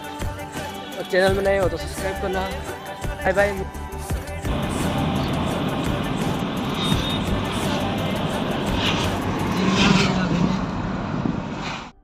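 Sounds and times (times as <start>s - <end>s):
road and engine rumble in car: 4.4s - 12.0s
faint voices or music: 4.5s - 10.9s.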